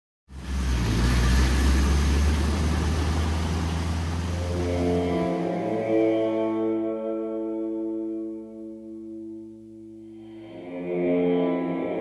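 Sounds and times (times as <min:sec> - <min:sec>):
road and tyre noise: 0:00.3 - 0:07.0
van engine drone: 0:00.3 - 0:09.9
music with held pitched notes: 0:03.1 - 0:12.0.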